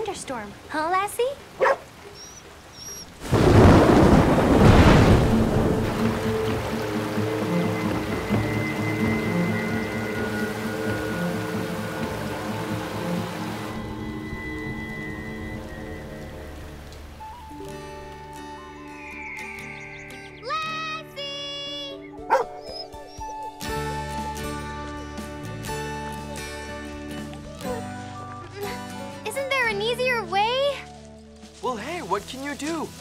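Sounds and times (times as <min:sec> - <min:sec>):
heavy rain: 0:00.0 - 0:18.6
loud thunderclap: 0:03.2 - 0:07.0.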